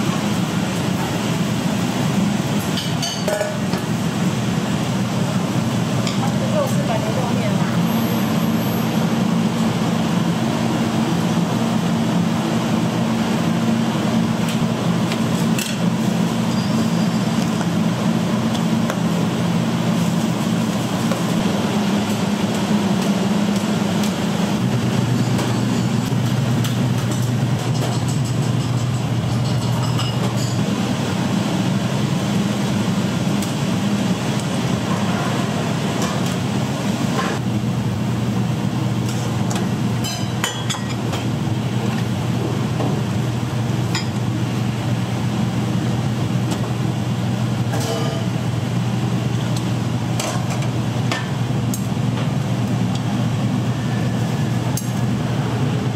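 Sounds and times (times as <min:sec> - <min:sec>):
low machine hum: 0:00.0 - 0:55.9
bowls and utensils clinking: 0:47.7 - 0:48.3.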